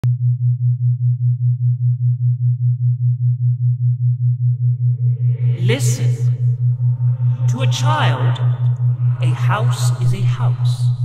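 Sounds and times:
low pulsing electronic tone: 0.0 - 11.0.

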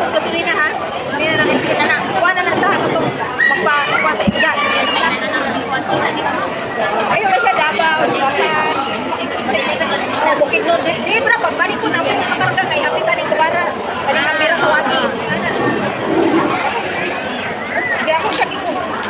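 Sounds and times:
people chattering: 0.0 - 19.0.

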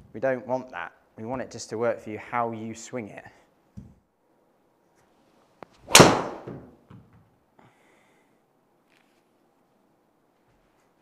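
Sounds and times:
golf ball struck by driver: 5.9 - 6.6.

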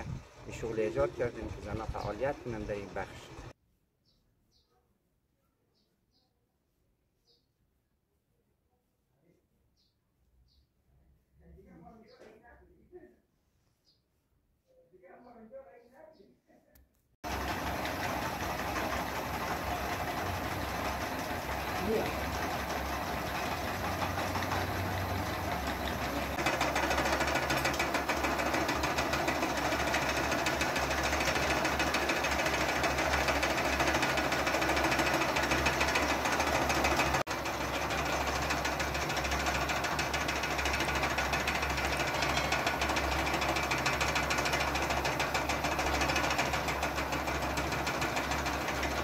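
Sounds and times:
spinning machines humming and rattling: 0.0 - 3.5, 17.2 - 49.0.

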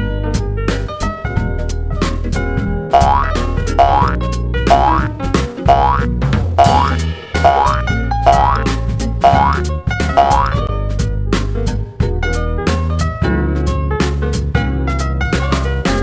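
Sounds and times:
cartoon boing effects: 2.9 - 5.1, 5.7 - 10.6
upbeat background music: 3.0 - 10.7.

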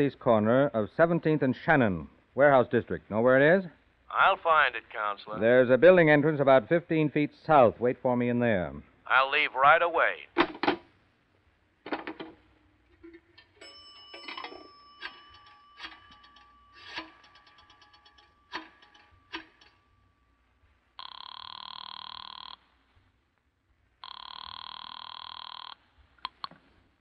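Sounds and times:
faint steady tone: 12.9 - 23.1
telephone bell ringing: 13.4 - 20.0, 21.0 - 22.6, 24.0 - 25.8
telephone dial clicks: 13.6 - 19.8.

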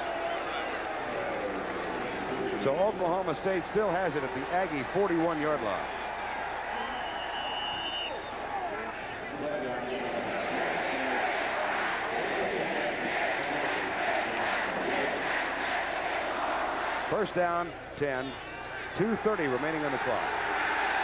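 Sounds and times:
stadium crowd din: 0.0 - 21.0
high whistle: 6.7 - 8.3.

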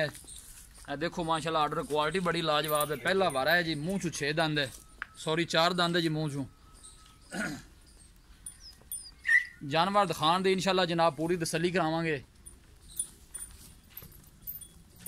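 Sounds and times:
tether chain jingling: 0.0 - 15.0
faint bird chirps: 6.4 - 9.7
cow hoof steps on dirt: 12.4 - 15.0.

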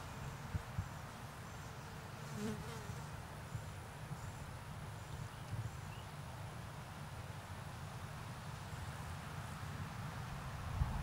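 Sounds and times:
flying insect buzzing: 0.3 - 3.1.

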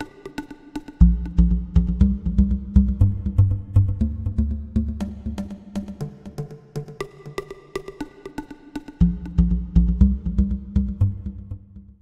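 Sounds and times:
bamboo stamping pipes rhythm: 0.0 - 11.8
deep low notes: 1.0 - 5.5, 9.0 - 12.0.

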